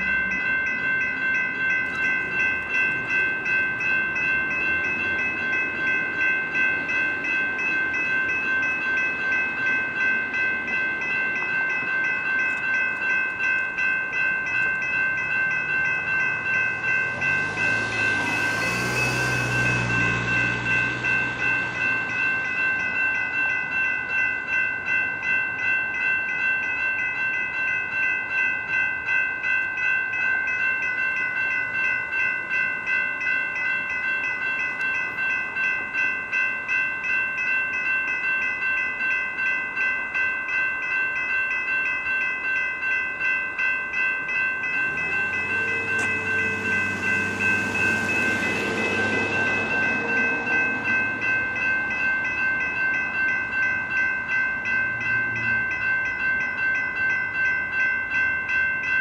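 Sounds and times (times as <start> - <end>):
crossing warning bell dinging: 0.0 - 59.0
vehicle passing rumble and hiss: 16.2 - 22.6, 44.7 - 52.2.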